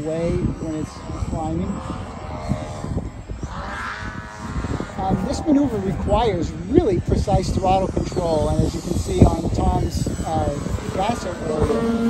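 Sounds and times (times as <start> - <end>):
model plane motor droning: 0.0 - 12.0
wind buffeting microphone: 0.0 - 12.0.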